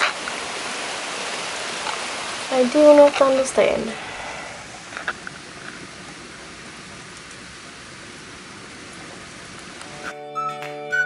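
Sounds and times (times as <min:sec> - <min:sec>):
steady rain falling: 0:00.0 - 0:10.1
melodic background music: 0:09.8 - 0:11.0.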